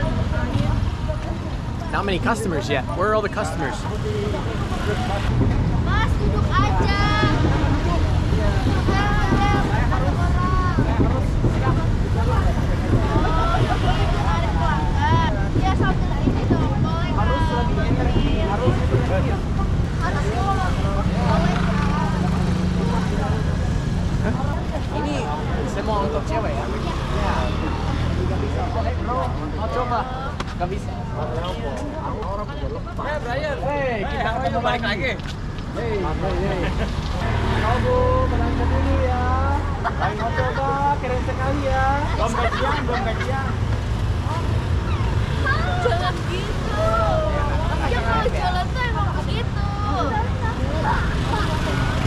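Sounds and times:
motorbike engines passing: 0.0s - 52.0s
people talking: 0.0s - 52.0s
street traffic: 0.0s - 52.0s.

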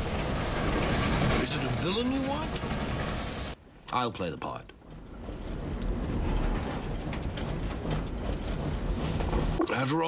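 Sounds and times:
railroad car rumble: 0.0s - 10.0s
wheels clicking over rails: 4.4s - 10.0s.

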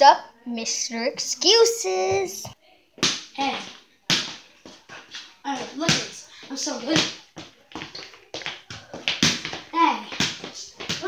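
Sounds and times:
footsteps on hardwood floor: 2.0s - 11.0s
small ball bouncing on wood floor: 6.9s - 11.0s.

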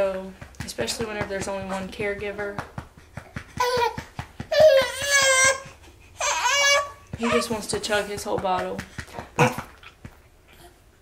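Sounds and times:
baby burping: 9.3s - 9.9s.

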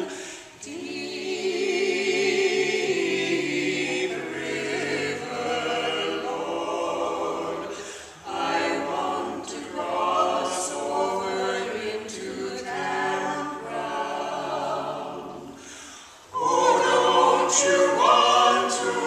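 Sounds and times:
vocal quartet singing a cappella: 0.0s - 19.0s.

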